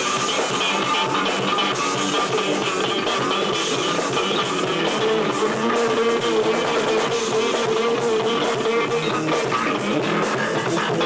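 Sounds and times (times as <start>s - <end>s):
electric bass strummed chords: 0.0s - 11.0s.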